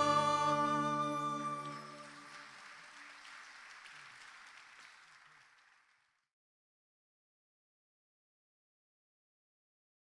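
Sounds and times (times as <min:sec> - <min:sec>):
faint audience applause: 0:00.0 - 0:06.3.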